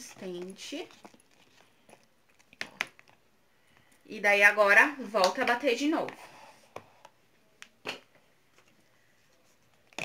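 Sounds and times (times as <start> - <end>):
spatula stirring thick paste: 0.0 - 3.2.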